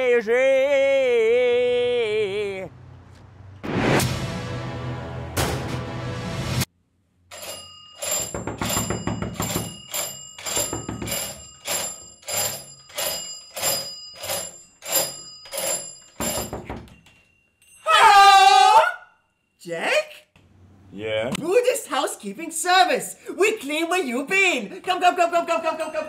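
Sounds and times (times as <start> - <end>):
doorbell ringing: 7.3 - 17.9
person calling out loudly: 22.6 - 26.0.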